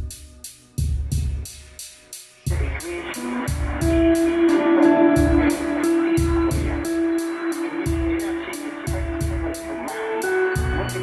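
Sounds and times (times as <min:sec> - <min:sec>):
electronic rock music: 0:00.0 - 0:11.0
machine-like beat with ticks: 0:00.0 - 0:11.0
low kick drum: 0:00.8 - 0:01.5, 0:02.5 - 0:02.8, 0:03.4 - 0:04.4, 0:05.2 - 0:07.0, 0:07.9 - 0:08.3, 0:08.9 - 0:09.6, 0:10.6 - 0:11.0
synthesizer notes: 0:02.6 - 0:11.0
electric guitar notes: 0:02.9 - 0:11.0.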